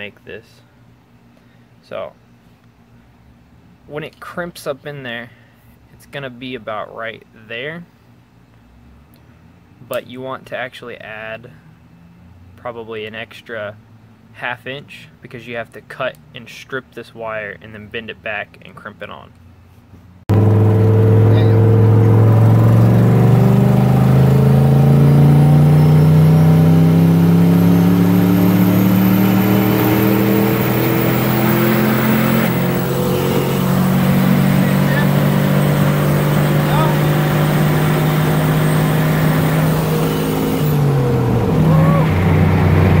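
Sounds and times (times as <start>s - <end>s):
engine accelerating: 20.3s - 43.0s.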